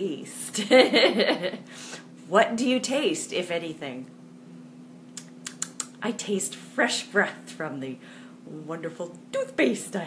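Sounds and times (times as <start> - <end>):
low mechanical hum: 0.0 - 10.0
small sharp clicks: 5.1 - 6.0.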